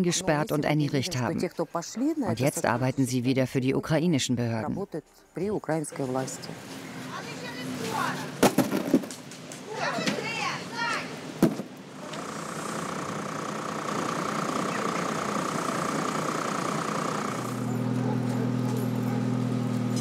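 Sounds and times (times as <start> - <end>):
voices: 0.0 - 8.4, 9.6 - 11.3, 11.9 - 17.6.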